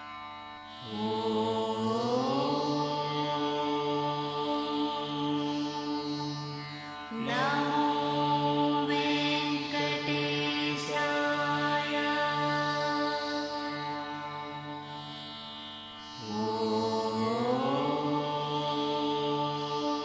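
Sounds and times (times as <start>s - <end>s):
devotional chanting: 0.0s - 20.0s.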